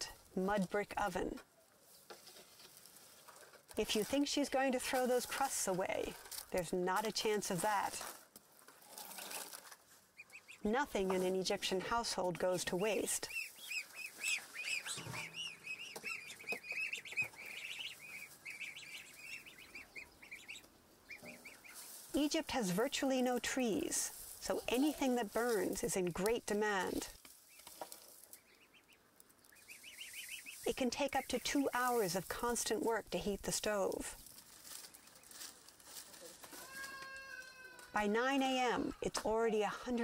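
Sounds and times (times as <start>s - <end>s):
goslings peeping: 10.1s - 33.8s.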